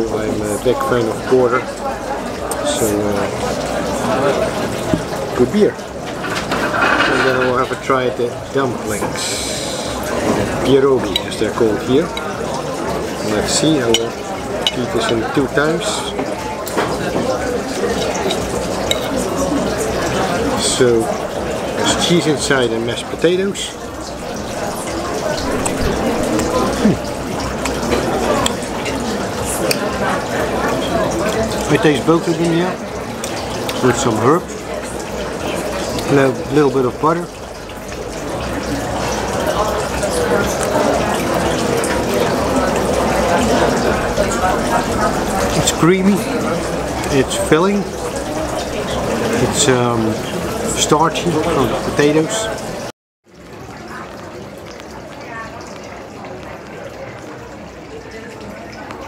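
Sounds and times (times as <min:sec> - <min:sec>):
murmuring voices: 0:00.0 - 0:52.9
diners chattering: 0:00.0 - 0:59.0
cutlery clink: 0:06.2 - 0:07.9, 0:17.9 - 0:19.2
knife and fork on a plate: 0:17.9 - 0:19.1.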